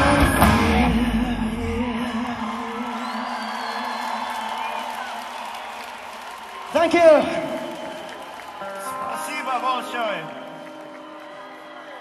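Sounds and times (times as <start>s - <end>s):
live rock band: 0.0s - 6.2s, 7.2s - 12.0s
crowd cheering and whooping: 1.8s - 12.0s.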